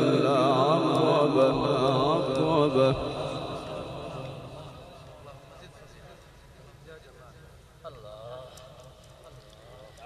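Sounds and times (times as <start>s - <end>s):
man chanting melodically: 0.0s - 6.2s.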